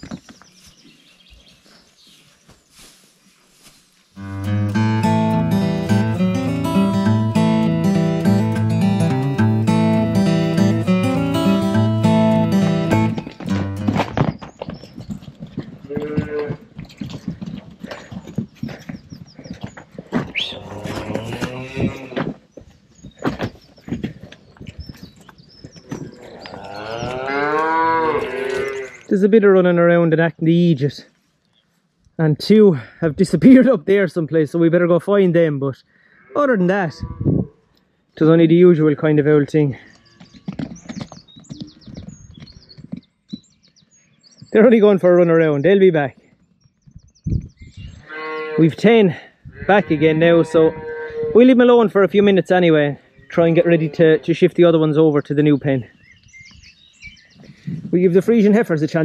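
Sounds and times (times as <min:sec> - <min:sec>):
cattle mooing: 0:04.2 - 0:13.9, 0:15.9 - 0:16.6, 0:20.4 - 0:22.3, 0:26.1 - 0:29.0, 0:48.0 - 0:48.8, 0:49.6 - 0:51.4
background music: 0:04.2 - 0:14.1.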